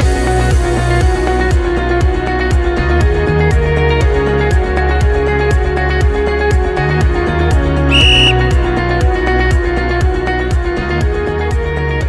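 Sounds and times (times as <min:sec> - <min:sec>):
short high electronic beep: 0:07.9 - 0:08.4.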